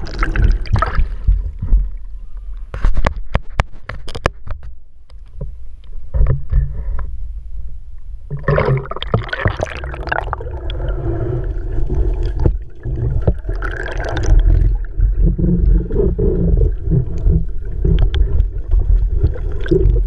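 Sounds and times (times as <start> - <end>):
water sloshing and gurgling: 0.0 - 7.1, 8.2 - 20.0
sharp clicks and knocks: 2.8 - 7.1
rush of churning water: 8.3 - 20.0.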